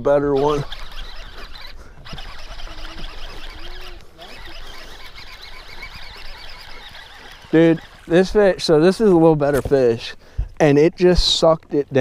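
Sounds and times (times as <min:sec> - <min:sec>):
ripples lapping against boat hull: 0:00.4 - 0:12.0.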